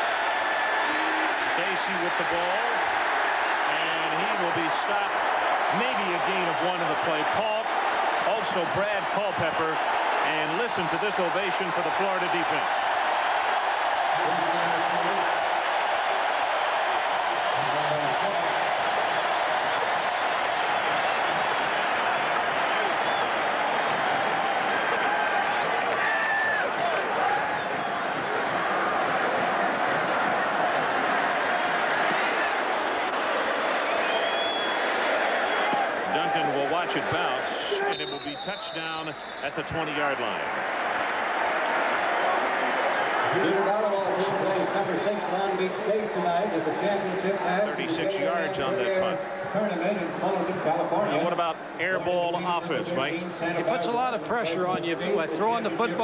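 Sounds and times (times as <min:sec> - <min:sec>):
stadium crowd cheering: 0:00.0 - 0:56.0.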